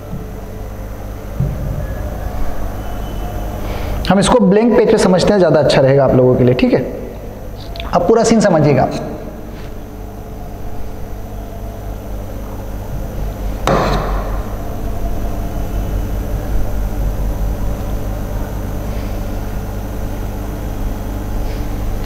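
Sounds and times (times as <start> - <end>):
low electrical hum: 0.0 - 22.0
sharp knock: 13.6 - 14.4.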